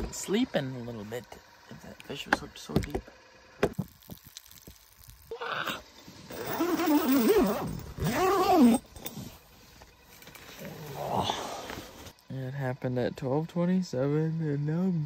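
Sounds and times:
rustling: 5.9s - 12.1s
man groaning: 10.8s - 11.7s.

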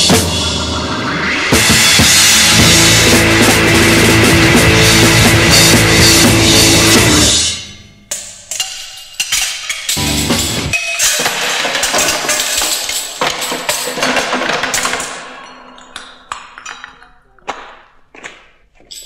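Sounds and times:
loud rock band: 0.0s - 7.6s, 10.0s - 10.8s
loose drum and percussion hits: 0.0s - 15.3s.

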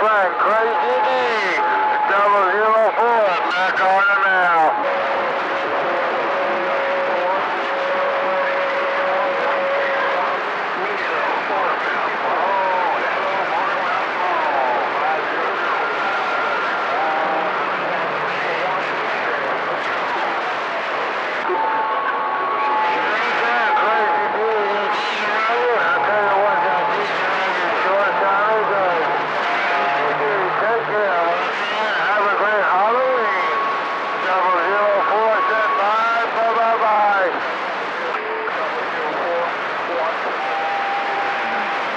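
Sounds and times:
radio static hiss: 0.0s - 41.9s
steady radio whistle: 0.1s - 41.9s.

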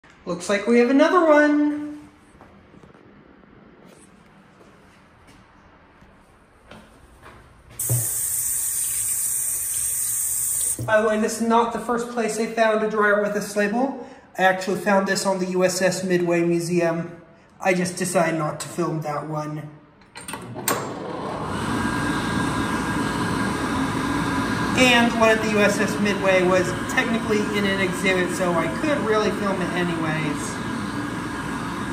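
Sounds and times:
hand dryer rushing air: 7.7s - 11.1s, 20.4s - 31.9s
faucet water running into basin: 7.8s - 10.9s.

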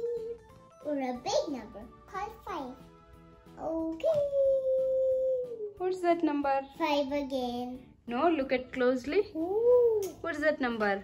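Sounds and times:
child's voice holding ooh: 3.6s - 5.7s.

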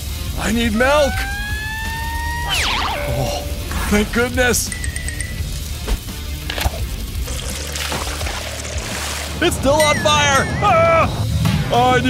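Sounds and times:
comic whistle sound effect: 0.8s - 3.8s.

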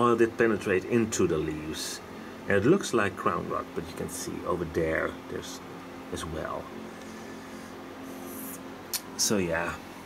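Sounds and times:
low background hum with hiss: 0.0s - 10.0s.

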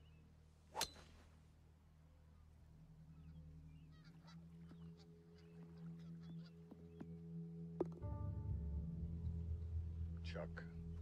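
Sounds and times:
low steady drone: 1.6s - 11.0s
small birds chirping: 2.3s - 7.3s.

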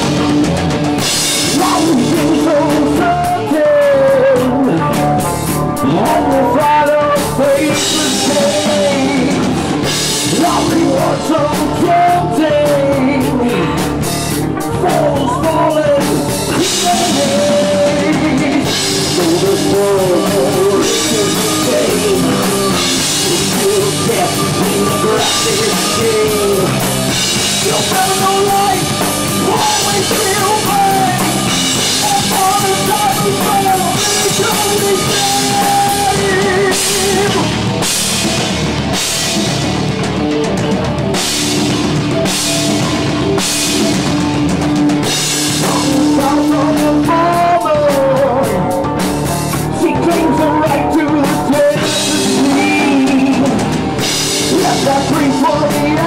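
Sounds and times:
rock band playing: 0.0s - 56.0s.

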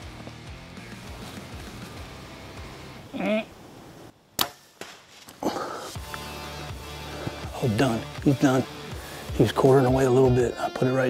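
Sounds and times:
bow string crack: 4.4s - 6.3s.

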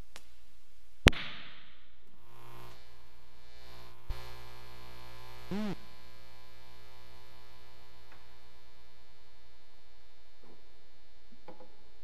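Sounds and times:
mains hum buzz: 0.0s - 12.0s.

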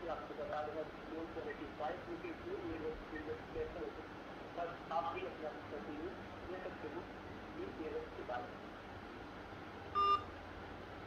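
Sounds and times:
short electronic beep: 10.0s - 10.3s.

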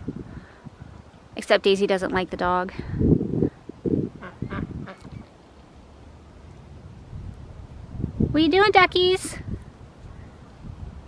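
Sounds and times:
ducks quacking: 4.2s - 5.2s.

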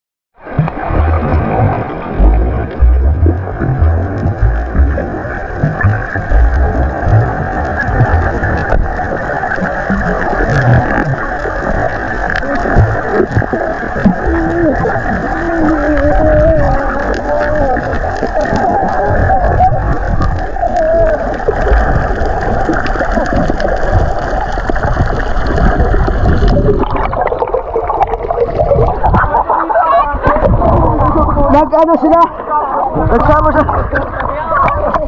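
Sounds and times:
low underwater thumps: 0.4s - 29.6s, 30.2s - 32.3s
dull underwater rumble: 0.4s - 31.7s, 32.4s - 35.0s.

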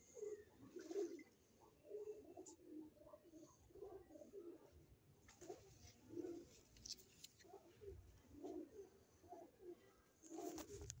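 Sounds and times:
pigeon cooing: 0.0s - 6.5s, 7.4s - 10.8s.

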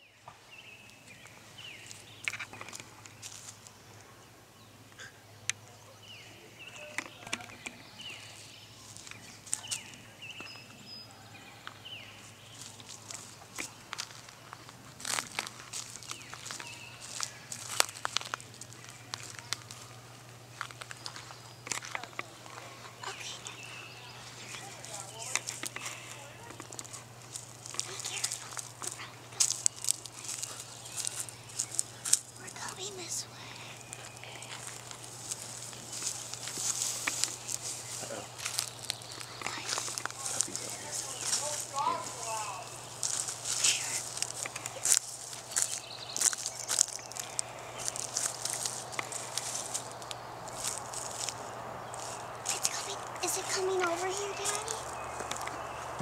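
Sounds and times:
twigs crackling underfoot: 0.8s - 4.2s, 6.6s - 10.8s, 11.4s - 56.0s
footsteps rustling through grass: 1.0s - 3.8s, 12.2s - 56.0s.

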